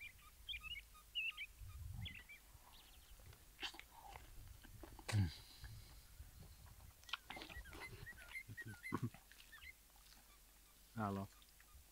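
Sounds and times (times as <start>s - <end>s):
close chewing: 3.2s - 10.7s.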